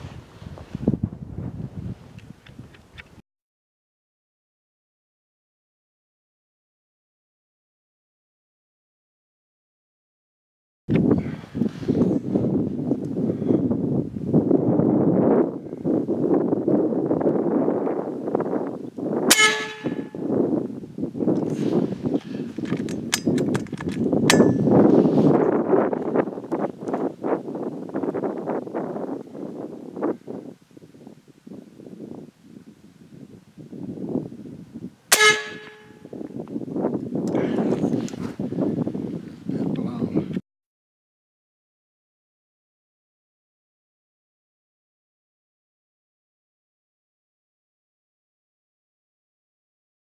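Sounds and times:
gusty wind on microphone: 0.0 - 3.2, 10.9 - 40.4
air rifle shots: 19.3 - 20.1, 35.1 - 35.9.

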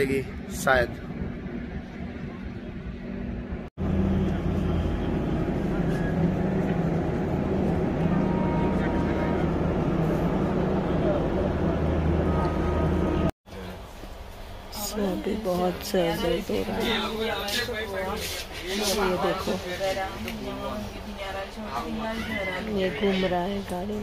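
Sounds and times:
train mechanical hum: 0.0 - 24.0.

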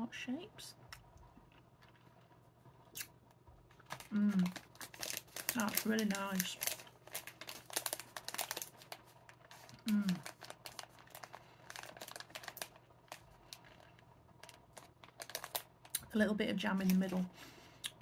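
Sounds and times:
plastic snack bag crinkling: 3.0 - 17.3
person humming: 4.1 - 4.6, 9.8 - 10.2.

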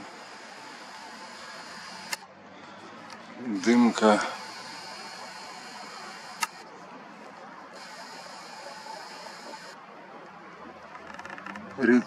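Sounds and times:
camera zoom motor whirring: 0.0 - 2.3, 3.1 - 6.7, 7.7 - 9.8
sharp click: 2.1 - 2.3, 6.4 - 6.6.

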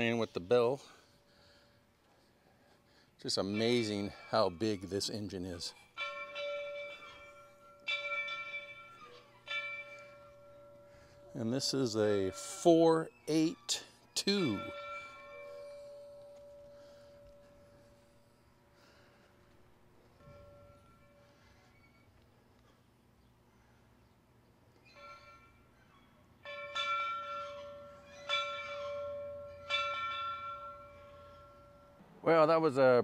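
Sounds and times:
locomotive bell ringing: 0.0 - 1.6, 3.2 - 22.2, 24.8 - 33.0.

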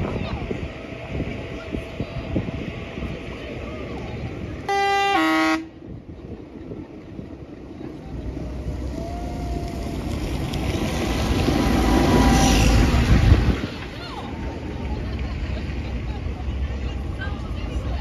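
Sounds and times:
vehicle horn: 4.7 - 5.7
tractor diesel engine passing: 6.6 - 18.0.

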